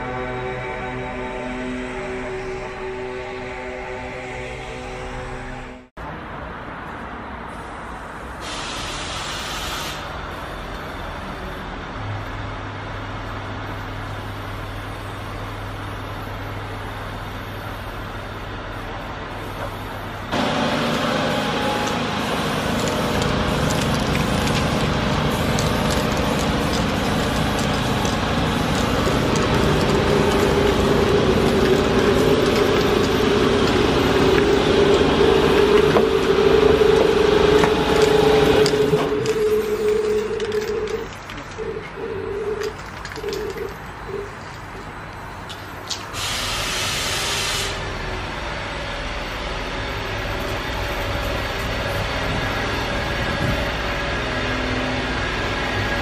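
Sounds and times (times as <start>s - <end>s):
train rushing with hum: 0.0s - 56.0s.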